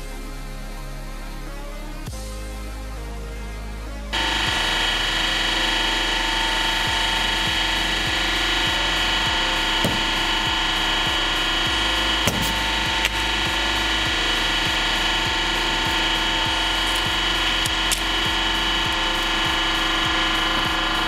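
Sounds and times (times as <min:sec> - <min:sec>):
hydraulic press humming and whining: 0:04.2 - 0:21.0.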